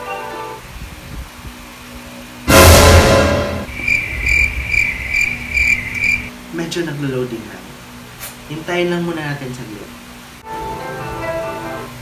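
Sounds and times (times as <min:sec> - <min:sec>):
high-pitched chirping tone: 0:03.6 - 0:06.3.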